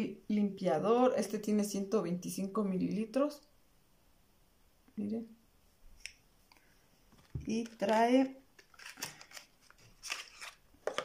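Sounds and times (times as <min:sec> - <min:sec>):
packaging rustles and clicks: 0:08.6 - 0:11.0.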